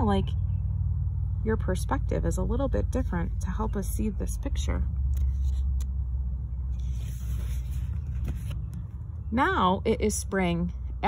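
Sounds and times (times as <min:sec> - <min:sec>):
steady low rumble: 0:00.0 - 0:11.0
paper page turning: 0:05.1 - 0:05.9, 0:06.7 - 0:08.8.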